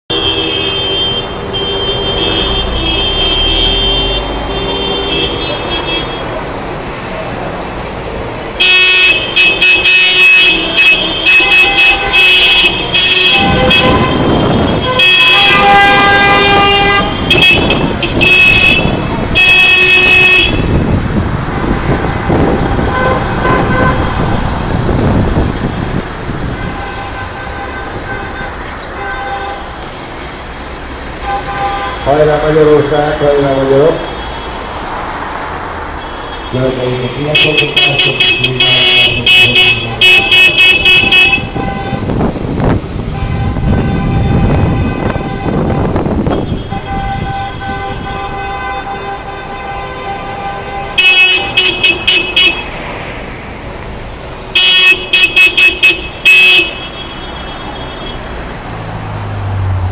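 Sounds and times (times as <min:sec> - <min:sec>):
road traffic: 0:00.0 - 0:59.9
car horns honking: 0:00.1 - 0:06.5, 0:07.5 - 0:21.0, 0:21.6 - 0:30.1, 0:31.0 - 0:34.8, 0:35.9 - 0:52.9, 0:53.7 - 0:59.0.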